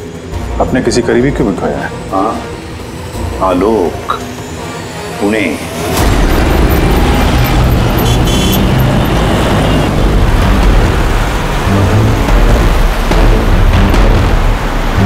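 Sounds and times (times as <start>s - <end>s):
car engine: 0.0s - 15.0s
dramatic music with pulsing bass: 0.0s - 15.0s
road traffic: 0.0s - 15.0s.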